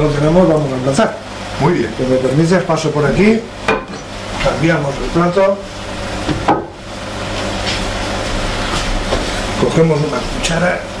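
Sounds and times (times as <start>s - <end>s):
fan noise with low hum: 0.0s - 11.0s.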